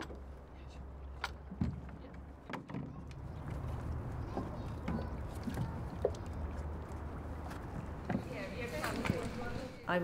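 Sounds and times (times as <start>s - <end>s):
light wooden knocks: 1.0s - 6.7s.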